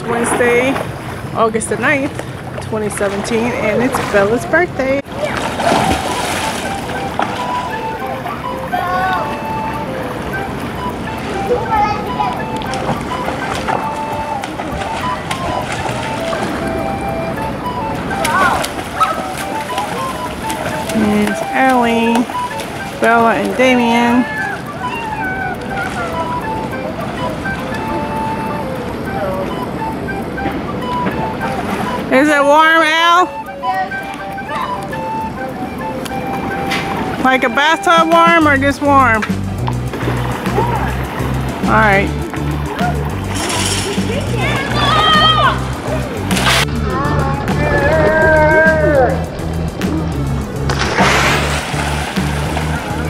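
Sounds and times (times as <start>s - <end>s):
water noise with light splashing: 0.0s - 53.0s
children calling out: 5.1s - 21.5s, 22.2s - 30.4s, 42.2s - 49.4s.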